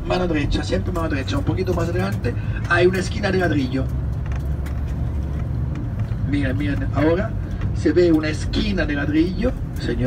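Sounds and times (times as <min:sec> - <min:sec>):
bus engine rumble: 0:00.0 - 0:10.0
road noise: 0:00.0 - 0:10.0.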